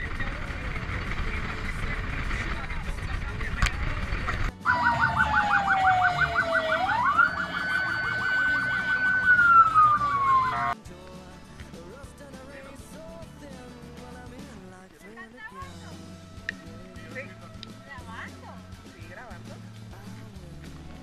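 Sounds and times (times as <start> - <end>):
road and wind noise: 0.0 - 10.8
electronic vehicle siren: 4.6 - 10.8.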